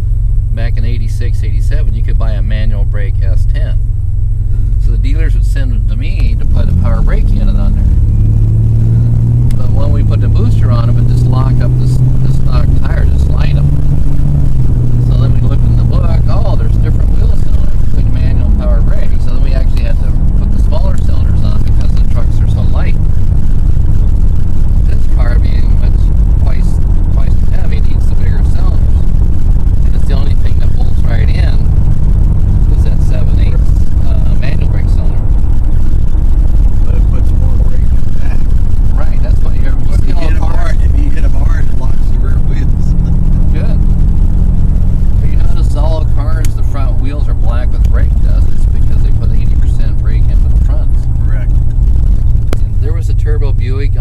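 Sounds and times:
car engine accelerating: 0.0s - 54.0s
indistinct voices talking: 0.0s - 54.0s
road rumble: 0.0s - 54.0s.

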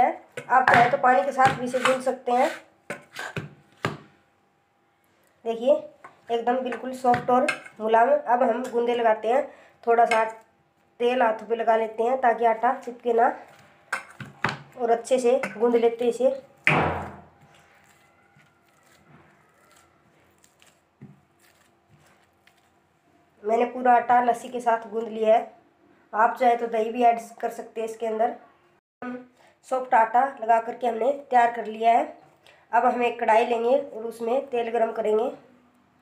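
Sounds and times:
hands kneading dough: 0.4s - 4.2s, 17.4s - 22.8s
sharp knock: 16.7s - 17.3s.

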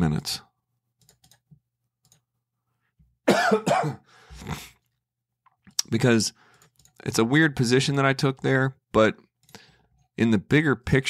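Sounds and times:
man coughing: 3.3s - 4.8s.

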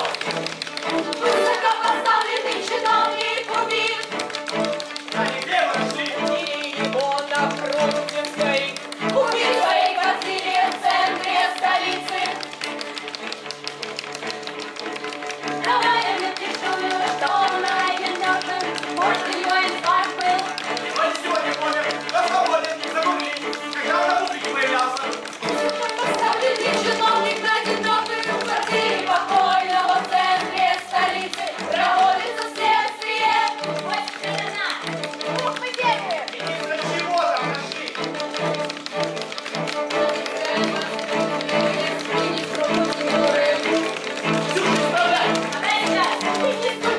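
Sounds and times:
string ensemble playing: 0.0s - 46.9s.

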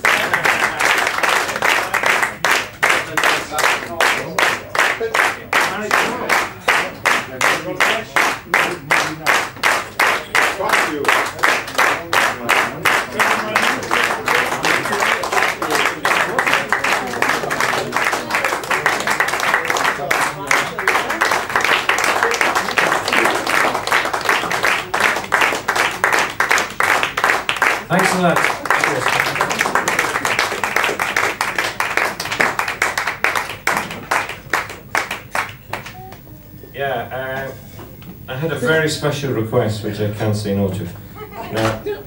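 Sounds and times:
voices: 0.0s - 26.5s
audience clapping: 0.0s - 36.4s, 41.6s - 41.8s.

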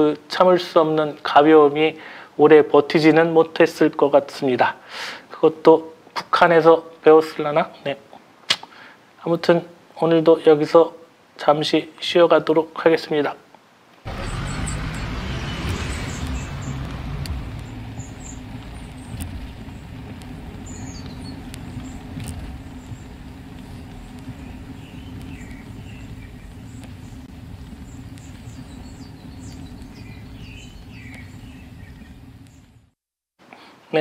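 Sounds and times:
motor vehicle low rumble: 14.1s - 33.0s
faint bird chirps: 20.6s - 22.1s, 24.2s - 32.8s.

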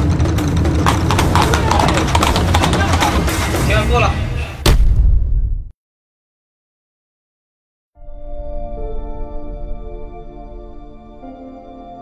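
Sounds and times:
hooves clip-clopping on stone: 0.0s - 3.4s
voices: 1.2s - 4.5s.

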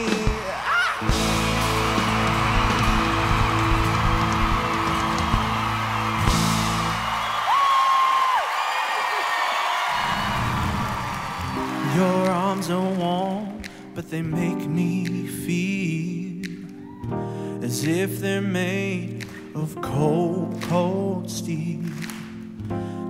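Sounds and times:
live band playing rock ballad: 0.0s - 7.2s
audience cheering and applauding: 0.0s - 13.6s
soft instrumental intro: 1.0s - 7.2s.

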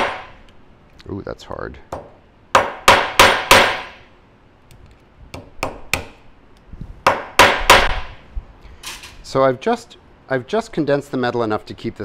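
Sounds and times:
hammer striking metal rivet: 0.0s - 0.4s, 1.9s - 4.0s, 7.1s - 8.1s.

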